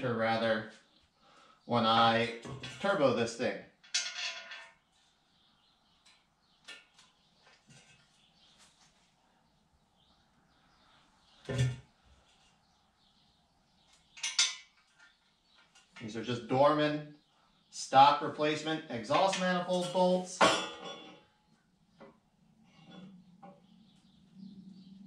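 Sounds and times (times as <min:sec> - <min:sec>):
metal bolts clinking: 0:03.8 - 0:04.8, 0:14.2 - 0:14.7.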